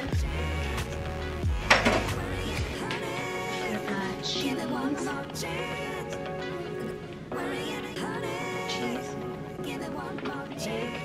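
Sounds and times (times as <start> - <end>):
background music with deep beat: 0.0 - 7.3.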